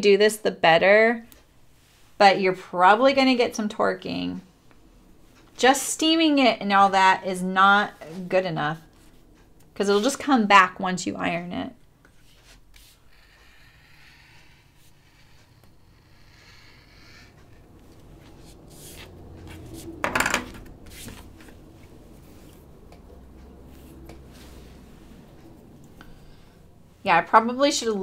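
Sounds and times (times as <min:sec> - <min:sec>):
hard object clack: 0:20.0 - 0:20.7.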